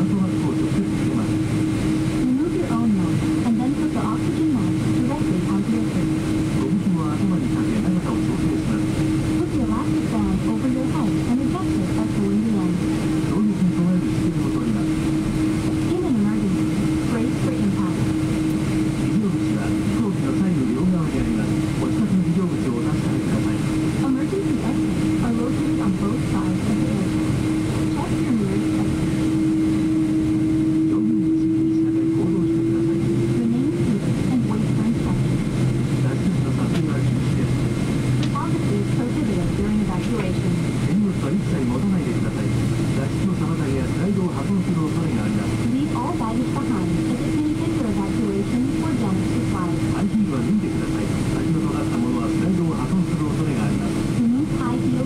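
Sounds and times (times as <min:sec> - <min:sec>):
aircraft engine hum: 0:00.0 - 0:55.0.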